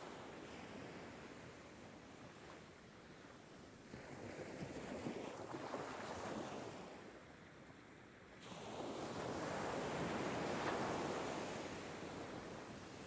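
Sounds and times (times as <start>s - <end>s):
ocean waves washing onto beach: 8.4s - 13.0s.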